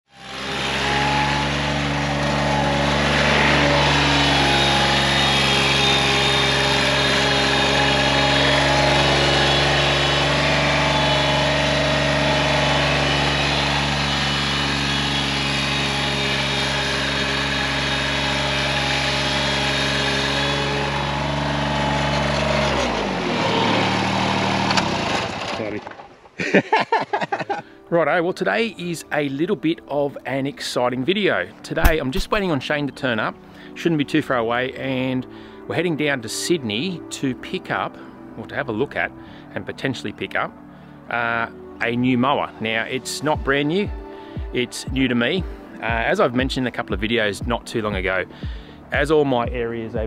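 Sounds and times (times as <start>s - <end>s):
diesel mower engine running: 0.1s - 25.8s, 31.8s - 33.8s, 41.1s - 50.0s.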